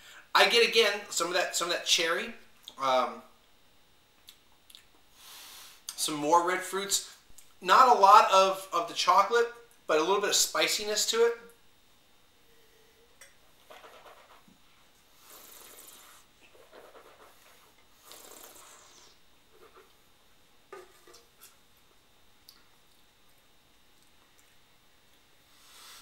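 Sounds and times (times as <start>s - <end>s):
person sipping and breathing: 17.5s - 19.2s.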